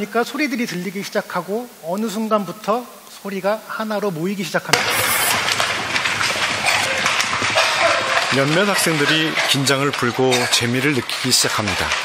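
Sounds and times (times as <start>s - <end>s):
people stamping feet on hard floor: 4.7s - 12.0s.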